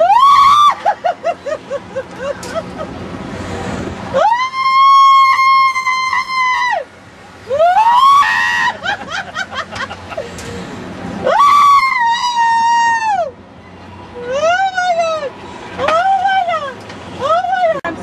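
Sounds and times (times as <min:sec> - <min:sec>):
long high-pitched screams: 0:07.5 - 0:08.7.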